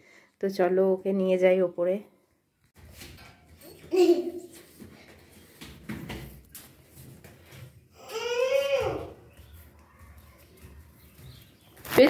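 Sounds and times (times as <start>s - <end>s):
footsteps on stairs: 2.9s - 11.8s.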